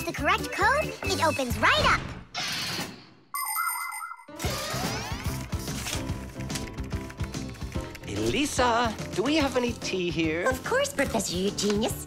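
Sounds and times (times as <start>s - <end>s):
light background music with beat: 5.2s - 12.0s.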